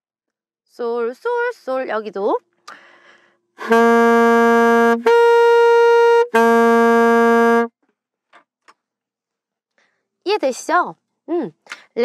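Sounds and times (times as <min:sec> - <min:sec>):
alto saxophone long notes: 0:03.6 - 0:07.7.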